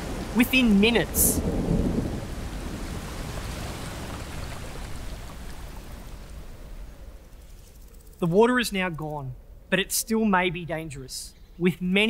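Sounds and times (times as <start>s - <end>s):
heavy rain: 0.0s - 7.1s
low rumble of thunder: 0.0s - 7.3s.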